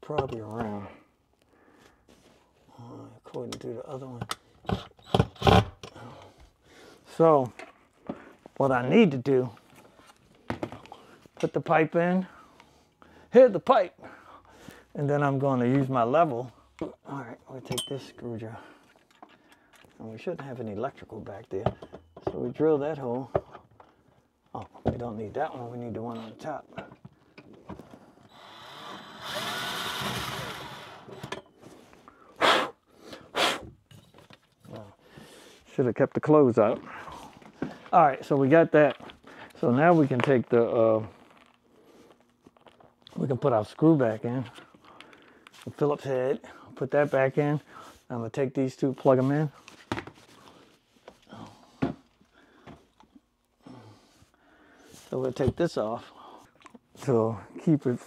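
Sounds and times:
man breathing and grunting: 0:00.7 - 0:03.3, 0:05.8 - 0:07.2, 0:36.8 - 0:37.9, 0:51.2 - 0:52.9, 0:53.6 - 0:55.2
power drill boring into wall: 0:04.7 - 0:05.7, 0:28.3 - 0:31.5
puff of breath: 0:32.1 - 0:33.7.

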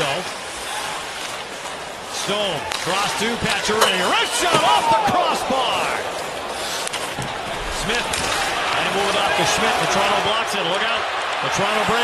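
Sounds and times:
arena crowd noise: 0:00.0 - 0:12.0
hockey sticks and puck knocking: 0:02.7 - 0:05.3.

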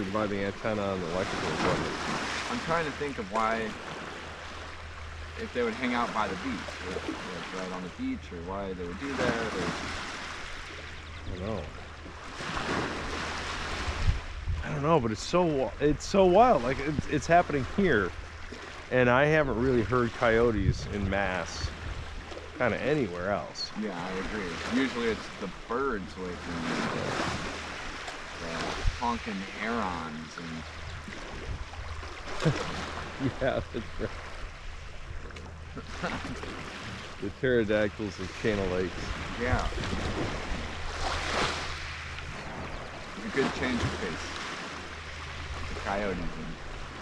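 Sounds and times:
wind rumble on microphone: 0:09.0 - 0:25.7, 0:26.4 - 0:47.0
lake waves on pebbly beach: 0:26.6 - 0:30.2, 0:38.2 - 0:47.0.

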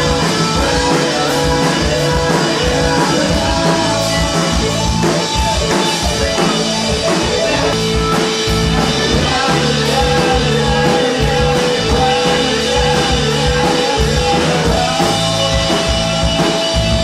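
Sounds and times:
rock music with drums and guitar: 0:00.0 - 0:17.0.

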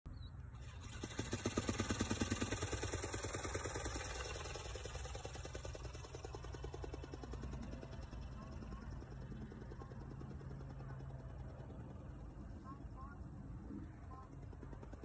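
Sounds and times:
buzz of flapping wings motor: 0:00.5 - 0:15.0.

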